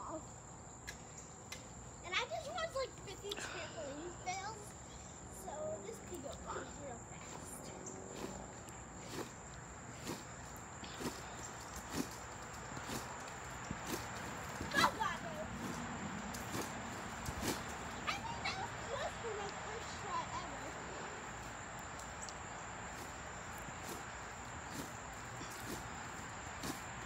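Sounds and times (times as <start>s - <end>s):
trampoline squeak: 6.5s - 20.6s, 22.9s - 27.0s.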